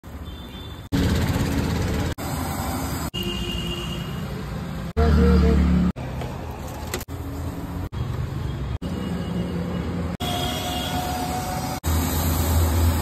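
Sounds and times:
traffic rumbling: 0:00.0 - 0:13.0.

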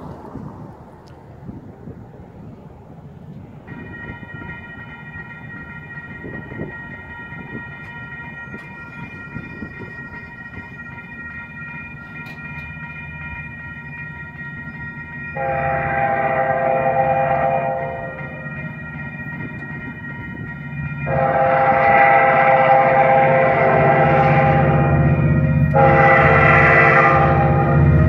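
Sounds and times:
train rumble: 0:00.0 - 0:28.0
steady high ringing tones: 0:03.6 - 0:28.0.

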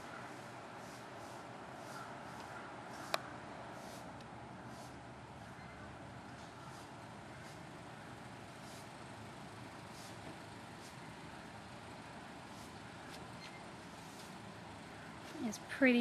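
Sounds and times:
distant road traffic rumble: 0:00.0 - 0:16.0.

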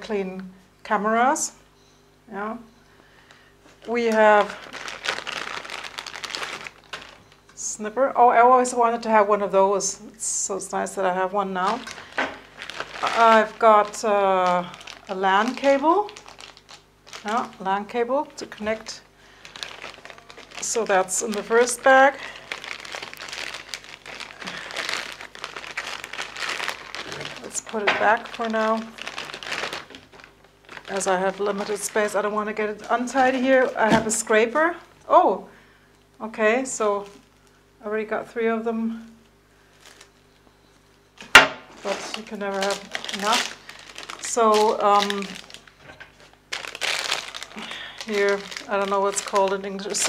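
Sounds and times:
plastic bag crinkling: 0:03.7 - 0:07.7, 0:10.8 - 0:35.0, 0:36.7 - 0:37.6, 0:39.6 - 0:40.4, 0:41.2 - 0:50.0.

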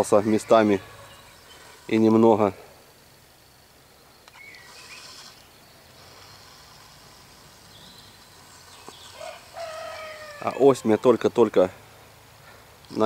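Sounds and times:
faint high hiss: 0:00.0 - 0:13.0
bird call: 0:04.2 - 0:05.5.

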